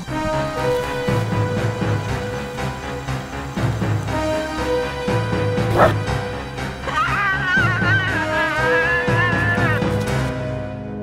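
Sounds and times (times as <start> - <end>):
music with long held notes: 0.0 - 11.0.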